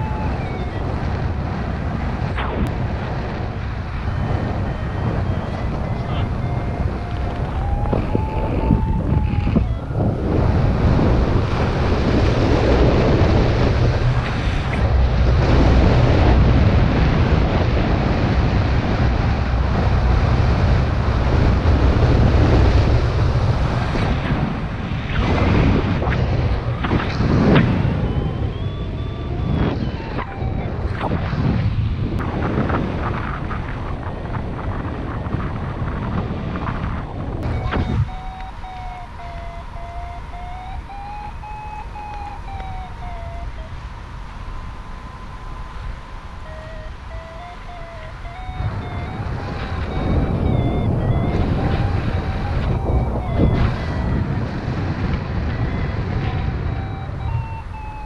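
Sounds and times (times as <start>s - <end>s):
variometer electronic beeping tone: 0.0s - 1.4s, 3.5s - 12.1s, 26.7s - 31.2s, 37.4s - 58.0s
wind buffeting microphone: 0.0s - 58.0s.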